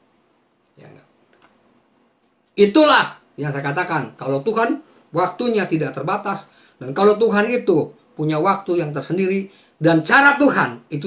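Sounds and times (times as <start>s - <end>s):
man speaking: 0.8s - 1.1s, 2.6s - 11.0s
faint click: 1.3s - 1.6s.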